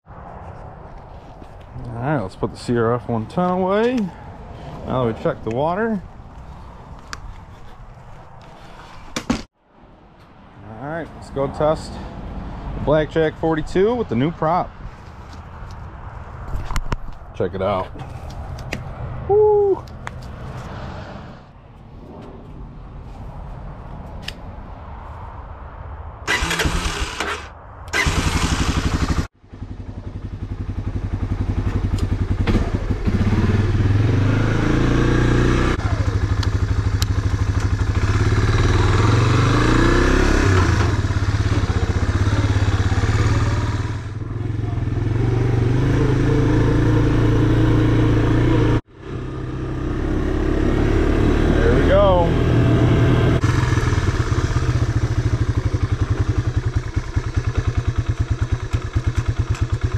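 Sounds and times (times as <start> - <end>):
motorcycle engine revving: 26.3 - 59.9.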